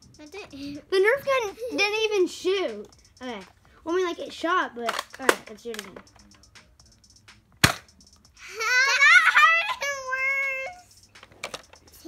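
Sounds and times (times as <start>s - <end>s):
toy blaster firing snap: 7.6s - 7.9s
child crying: 8.4s - 10.8s.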